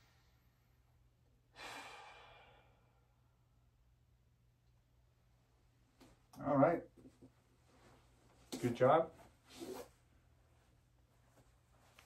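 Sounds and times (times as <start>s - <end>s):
man sighing: 1.5s - 3.0s.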